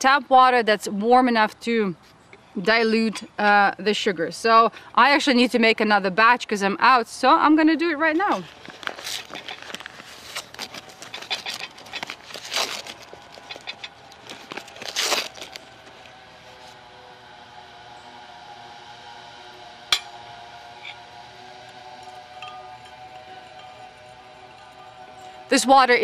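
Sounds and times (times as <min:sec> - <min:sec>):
sugar bag crinkling: 0:08.3 - 0:16.0.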